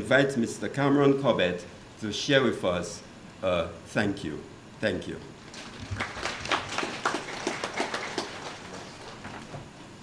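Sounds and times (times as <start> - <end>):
light applause: 5.5 - 9.5.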